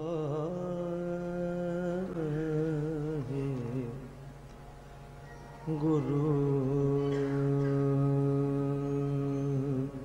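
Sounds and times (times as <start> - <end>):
person singing wordless vocal: 0.0 - 4.2, 5.6 - 10.0
harmonium: 0.0 - 10.0.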